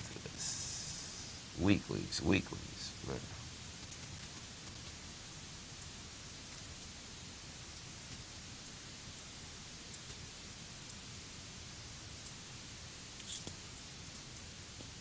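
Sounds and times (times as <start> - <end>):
low hiss of room tone: 0.0 - 15.0.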